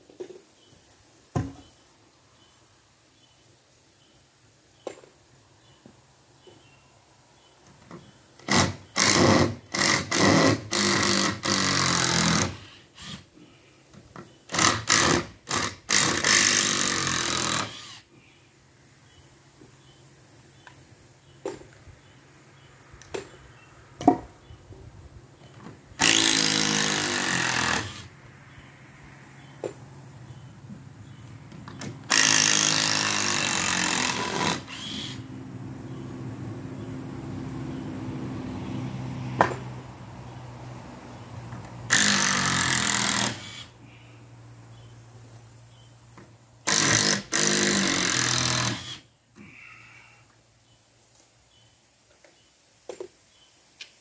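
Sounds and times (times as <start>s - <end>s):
power drill driving screws: 8.4s - 13.3s, 14.5s - 18.1s, 26.0s - 28.1s, 31.8s - 35.2s, 41.9s - 43.7s, 46.6s - 49.1s.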